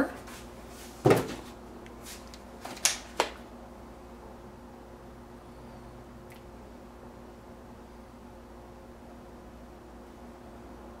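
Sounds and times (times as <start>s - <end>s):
faint room hum: 0.0s - 11.0s
knocks of objects handled: 1.0s - 1.5s.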